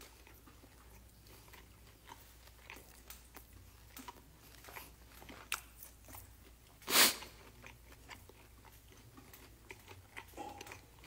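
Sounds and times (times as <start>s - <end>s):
chewing crispy food: 0.0s - 11.0s.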